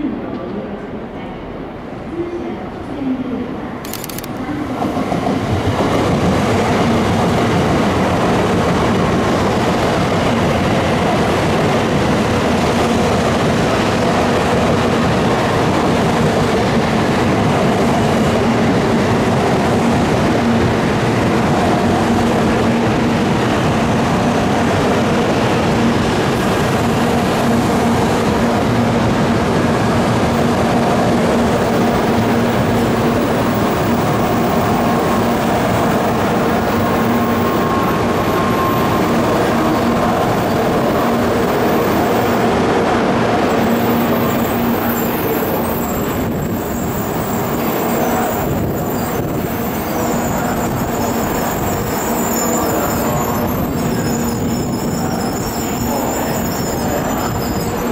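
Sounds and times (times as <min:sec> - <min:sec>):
train rolling past: 0:00.0 - 0:57.9.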